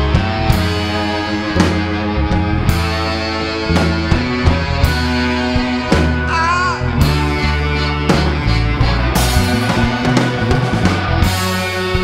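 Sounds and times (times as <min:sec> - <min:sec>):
soul band playing: 0:00.0 - 0:12.0.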